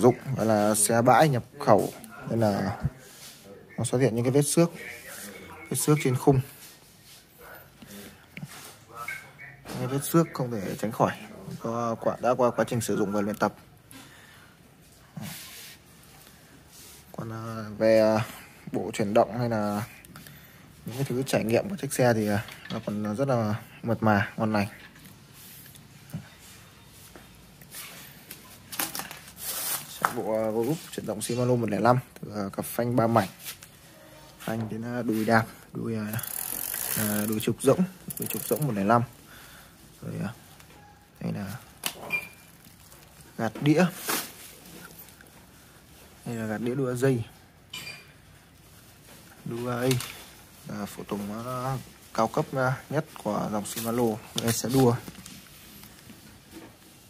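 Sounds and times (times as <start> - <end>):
soft handling sounds: 0.0 - 57.0.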